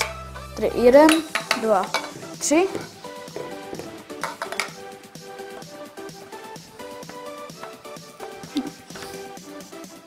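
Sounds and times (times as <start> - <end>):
background music sustained notes: 0.0 - 10.0.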